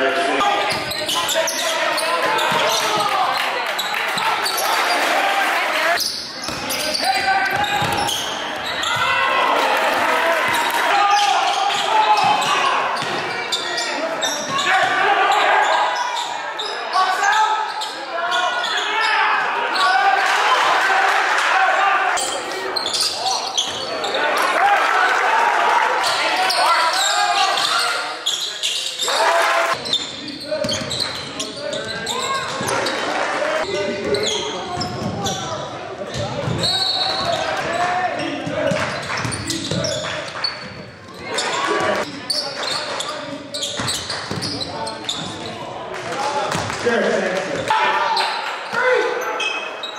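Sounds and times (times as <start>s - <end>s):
ball bouncing on hardwood court: 12.2s - 13.2s
people shouting: 47.7s - 49.2s.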